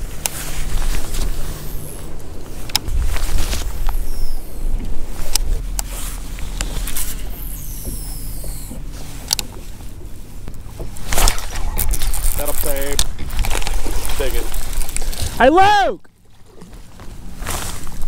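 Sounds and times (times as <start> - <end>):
boat and wind rumble: 0.0 - 18.0
faint hum: 0.0 - 18.0.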